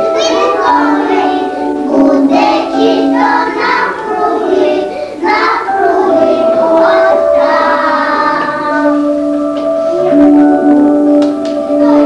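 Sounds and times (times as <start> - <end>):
children singing: 0.0 - 12.0
musical accompaniment: 0.0 - 12.0.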